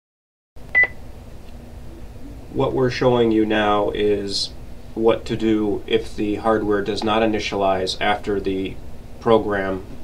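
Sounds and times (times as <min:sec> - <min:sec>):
faint background hum: 0:00.6 - 0:10.0.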